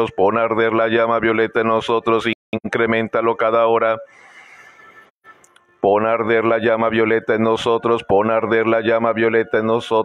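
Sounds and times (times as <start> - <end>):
person praying fast: 5.8 - 10.0.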